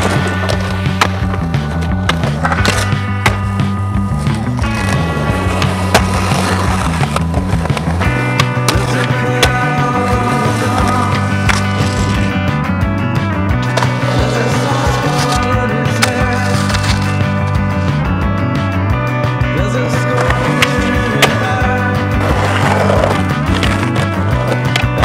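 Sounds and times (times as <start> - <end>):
skateboard clacks: 0.0 - 12.3, 20.0 - 25.0
skateboard wheels rolling on concrete: 0.0 - 25.0
song with bass line: 0.0 - 25.0.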